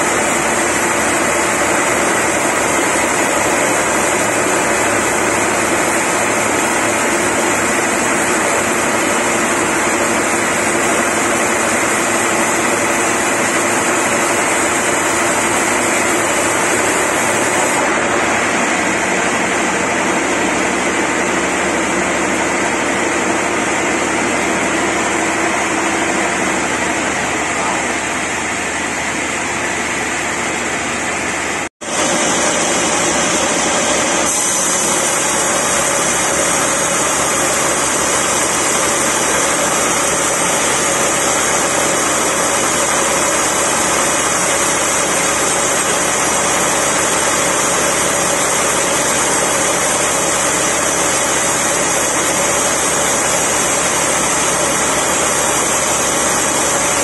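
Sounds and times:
band saw cutting log: 0:00.0 - 0:19.9, 0:31.8 - 0:57.0.

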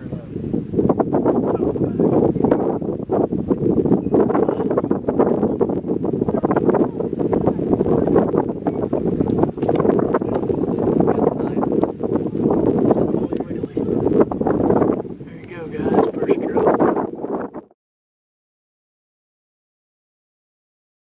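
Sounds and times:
wind buffeting microphone: 0:00.0 - 0:17.8.

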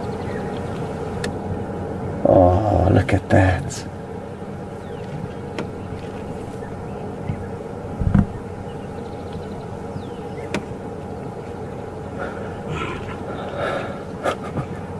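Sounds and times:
vehicle engine idling: 0:00.0 - 0:14.9.

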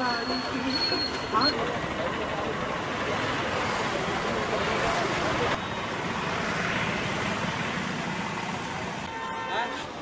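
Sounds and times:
roadside traffic hum: 0:00.0 - 0:10.0.

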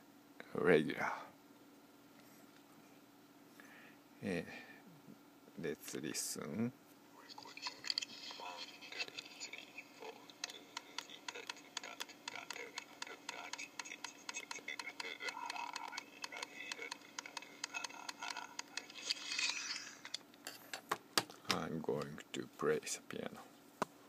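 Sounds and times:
voice through small speaker: 0:07.2 - 0:19.1
quick regular taps: 0:10.3 - 0:18.9, 0:20.7 - 0:22.2.

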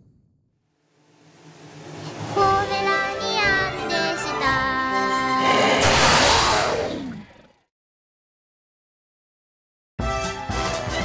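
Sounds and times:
noisy cartoon sound effect: 0:05.3 - 0:07.6.

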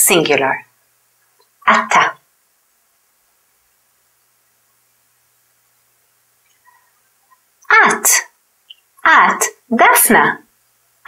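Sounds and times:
woman speaking a word: 0:01.7 - 0:02.2, 0:07.7 - 0:08.3, 0:09.0 - 0:10.4.

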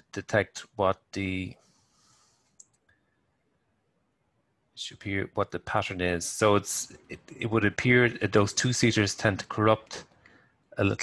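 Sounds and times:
computer mouse click: 0:02.4 - 0:03.0.

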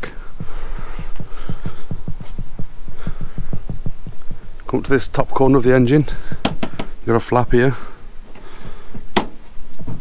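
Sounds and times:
faint handling knocks: 0:00.0 - 0:05.6.

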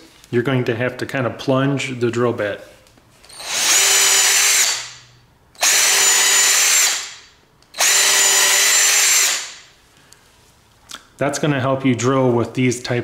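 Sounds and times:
cordless drill drilling into wood: 0:03.3 - 0:05.0, 0:05.6 - 0:07.2, 0:07.8 - 0:09.6.

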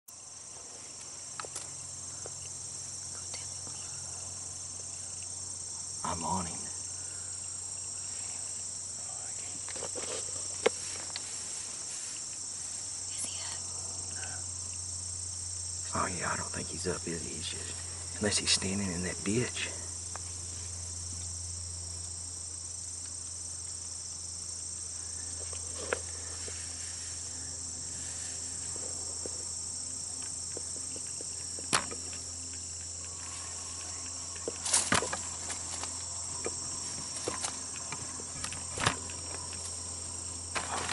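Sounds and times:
crickets and insects chirping: 0:00.1 - 0:40.9.

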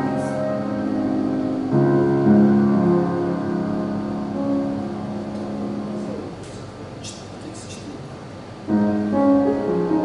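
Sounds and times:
grand piano notes ringing: 0:00.0 - 0:07.0, 0:08.5 - 0:10.0
faint room hiss: 0:00.0 - 0:10.0.

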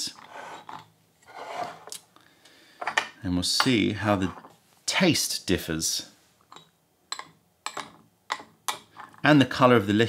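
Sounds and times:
porcelain lid scraping rub: 0:00.2 - 0:01.9.

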